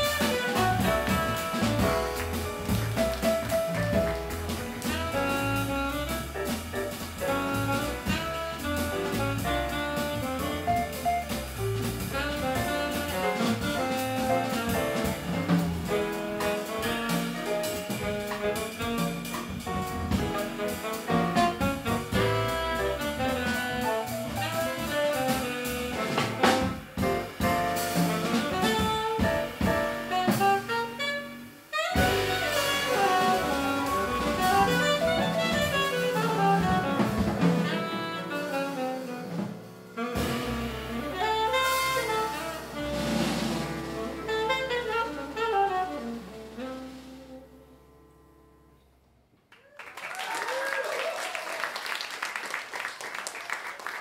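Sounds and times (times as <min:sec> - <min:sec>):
jazz quartet playing: 0:00.0 - 0:48.9
audience applauding: 0:00.5 - 0:05.0, 0:49.5 - 0:54.0.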